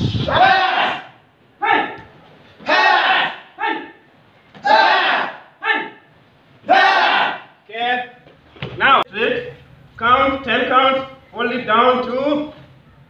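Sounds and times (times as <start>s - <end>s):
group shouting together: 0.3s - 2.0s, 2.6s - 4.0s, 4.6s - 6.0s, 6.6s - 7.6s.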